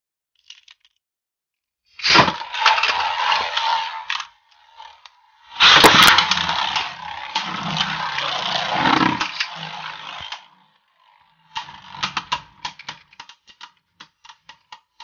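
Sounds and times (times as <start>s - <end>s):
spinning tops whirring and scraping: 2.0s - 15.0s
spinning tops clicking together: 11.6s - 15.0s.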